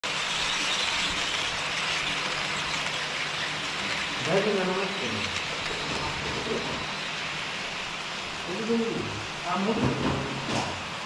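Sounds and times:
model train wheels rolling: 0.0 - 11.0.

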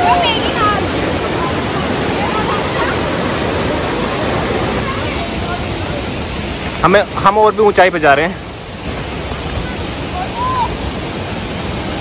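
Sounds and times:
faint voices: 0.0 - 6.5
waterfall rushing into pool: 0.0 - 12.0.

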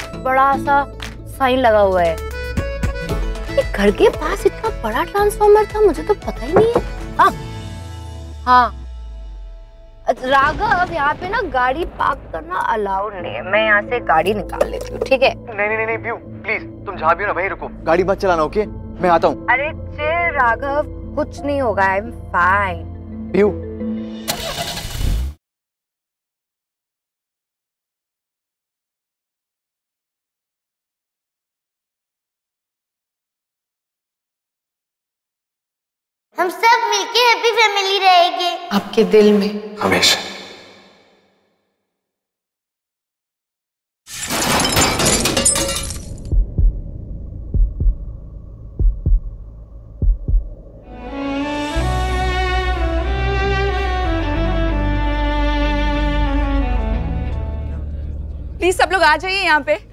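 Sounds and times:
heartbeat thumps: 4.2 - 7.5, 46.3 - 50.8
glass shattering: 44.1 - 46.3
debris clattering: 44.1 - 46.4.

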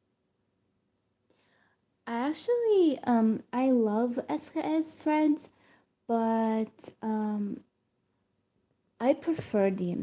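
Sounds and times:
faint breath: 1.3 - 1.9, 5.5 - 6.0
person speaking: 9.0 - 10.0.

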